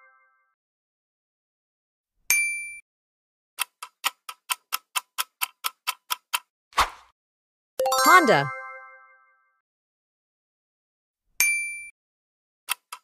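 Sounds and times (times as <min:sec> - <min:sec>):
brief swish: 0:06.8 - 0:07.1.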